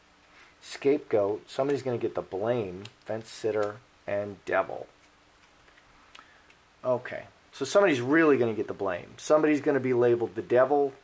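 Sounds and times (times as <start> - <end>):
faint room tone hum: 0.0 - 11.0.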